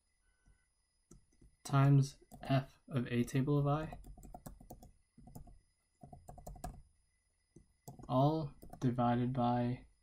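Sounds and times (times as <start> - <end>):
faint keyboard typing: 0.4 - 6.9, 7.5 - 9.0.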